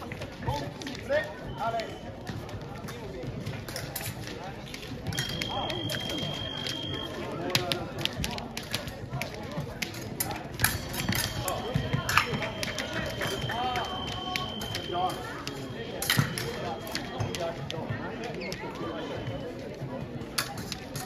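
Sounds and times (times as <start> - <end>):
people talking: 0.0 - 21.0.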